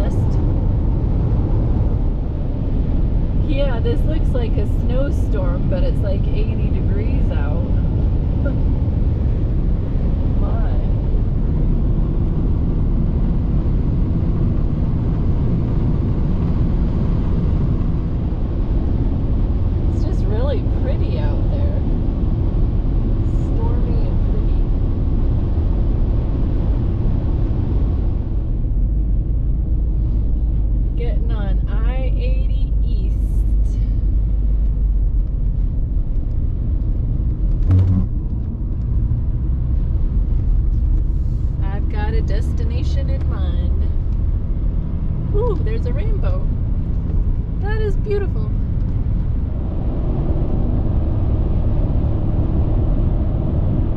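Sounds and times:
car road and engine rumble: 0.0s - 53.9s
wind hiss and tyre noise: 0.0s - 53.9s
brief knock: 37.6s - 38.1s.

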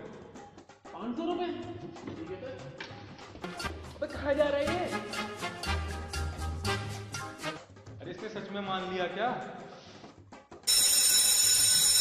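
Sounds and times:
electric school bell ringing: 10.7s - 12.0s.

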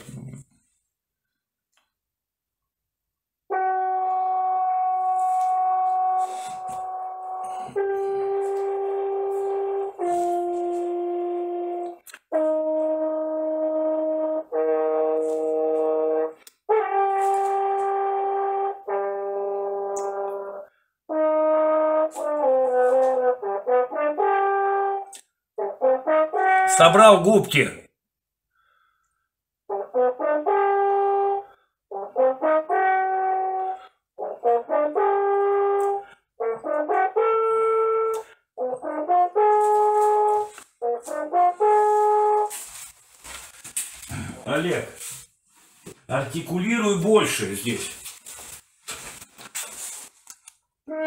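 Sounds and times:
french horn playing: 3.5s - 27.7s, 29.7s - 43.8s.

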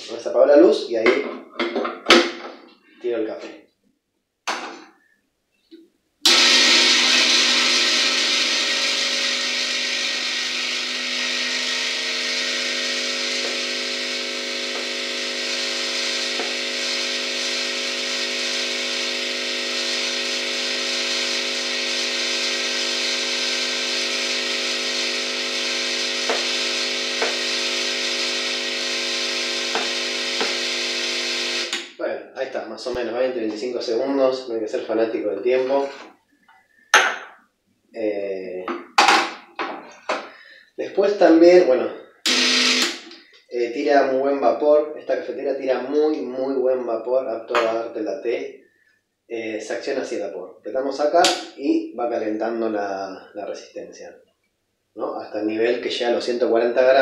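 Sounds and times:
espresso machine pump buzzing: 6.3s - 31.9s, 42.2s - 43.2s.

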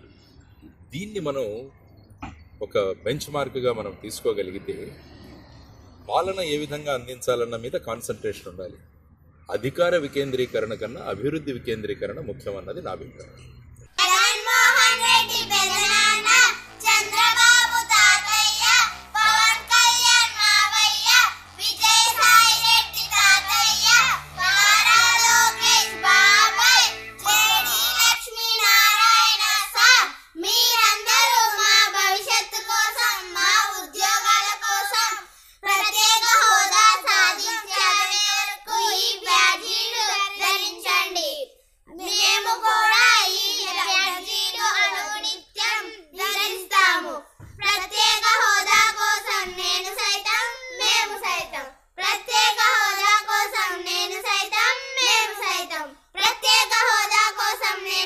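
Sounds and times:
low musical notes: 14.0s - 28.3s
girls singing: 14.0s - 41.1s, 42.0s - 58.0s.

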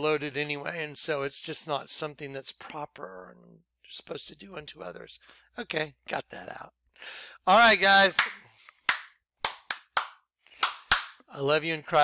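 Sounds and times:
man clapping hands: 8.0s - 11.2s.

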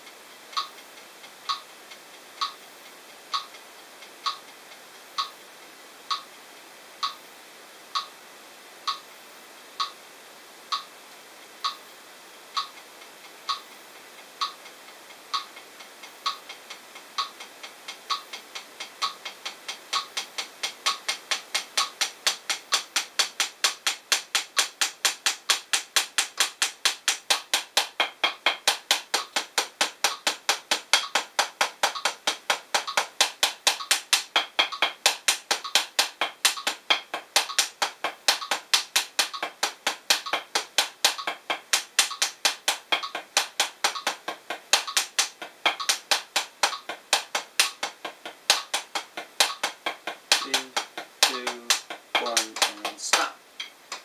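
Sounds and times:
metronome clicking: 0.0s - 4.6s, 5.2s - 5.4s, 6.1s - 6.4s, 10.7s - 10.9s, 12.5s - 54.0s
drumsticks on practice pad: 0.0s - 7.2s, 7.9s - 8.2s, 8.9s - 9.1s, 9.8s - 10.0s, 10.7s - 11.0s, 11.6s - 11.9s, 12.5s - 54.0s.

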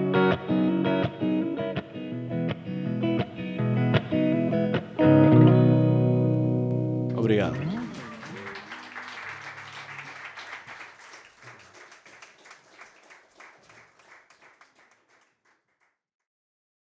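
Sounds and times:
audience applauding: 7.1s - 15.8s.

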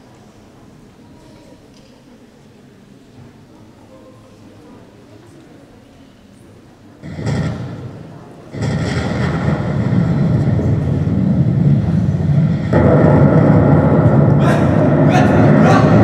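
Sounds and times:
loud rumbling noise: 6.9s - 16.0s
thud: 7.0s - 16.0s.

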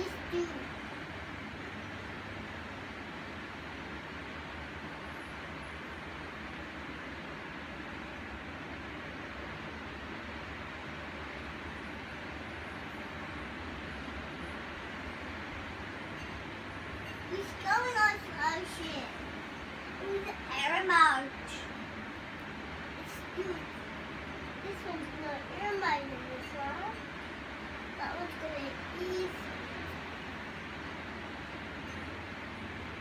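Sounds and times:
electric fans rushing air: 0.0s - 33.0s.

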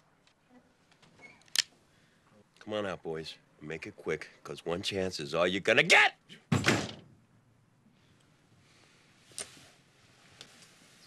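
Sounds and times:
door banging: 6.5s - 7.1s.

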